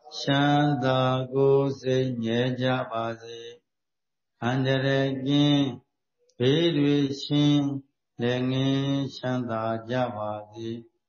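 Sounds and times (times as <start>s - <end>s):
man chanting: 0.0s - 3.7s, 4.4s - 11.0s.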